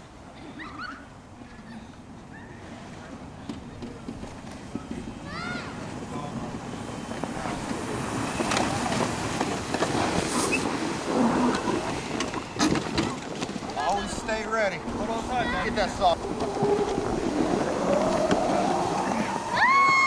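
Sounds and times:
sleds sliding over snow: 0:01.4 - 0:20.0
golf cart running: 0:02.9 - 0:20.0
voices calling out: 0:05.1 - 0:20.0
rising and falling shout: 0:15.4 - 0:20.0.

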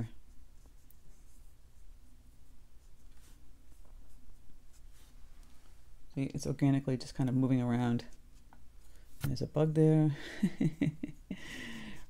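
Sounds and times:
brush stroking on paper: 0:00.0 - 0:05.9
low steady hum: 0:00.0 - 0:12.0.

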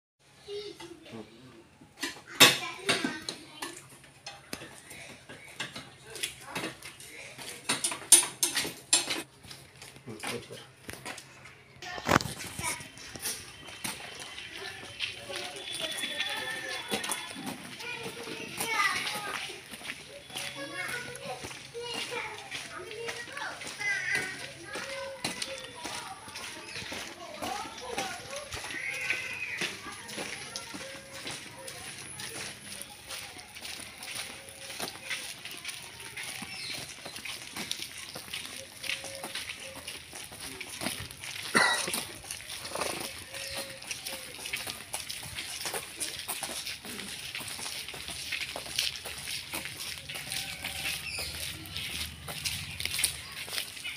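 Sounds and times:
children calling and chattering: 0:00.2 - 0:53.9.

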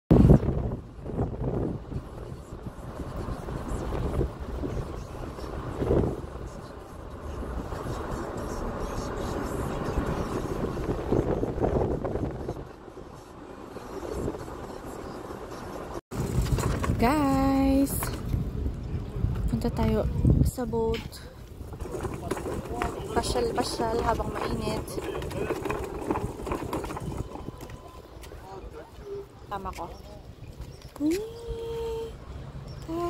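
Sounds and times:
faint voices: 0:01.8 - 0:16.0, 0:17.0 - 0:33.0.

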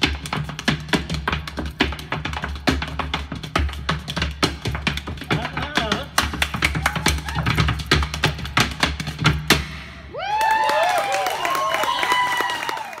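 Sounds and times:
body percussion claps and slaps: 0:00.0 - 0:13.0
audience applauding and cheering: 0:06.6 - 0:07.7, 0:10.1 - 0:13.0.

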